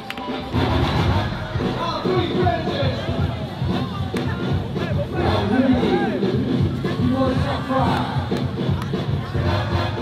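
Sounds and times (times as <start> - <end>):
crowd shouting and cheering: 0.0 - 10.0
battle music with steady beat: 0.3 - 10.0.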